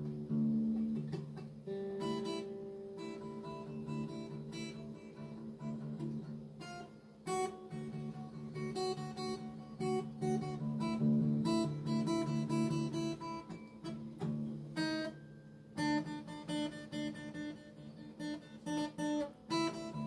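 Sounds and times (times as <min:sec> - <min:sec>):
fingerstyle acoustic guitar: 0:00.0 - 0:20.0.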